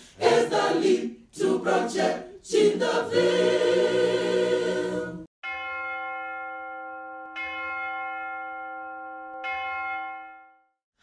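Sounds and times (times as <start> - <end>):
church bell tolling: 5.4 - 10.8.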